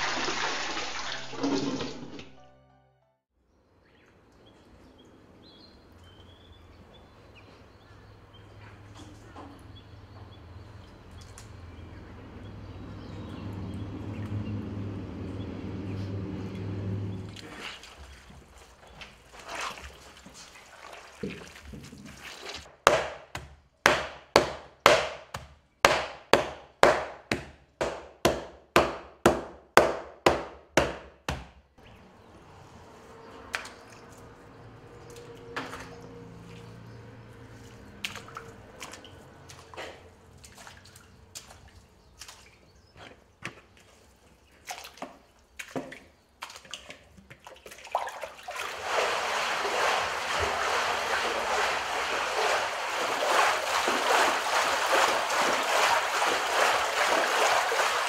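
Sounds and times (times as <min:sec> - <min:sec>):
water dripping: 0:00.0 - 0:02.2, 0:33.4 - 0:42.7, 0:44.7 - 0:58.0
water sloshing in vat: 0:00.0 - 0:02.4, 0:17.1 - 0:22.7, 0:31.8 - 0:58.0
wet handling of fibre: 0:47.7 - 0:58.0
wooden sticks beating wet fibre: 0:47.8 - 0:58.0.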